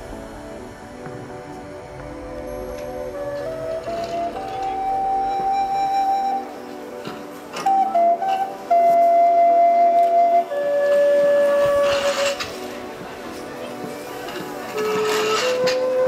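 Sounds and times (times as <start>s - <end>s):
flute-like wind instrument melody: 2.4s - 16.0s.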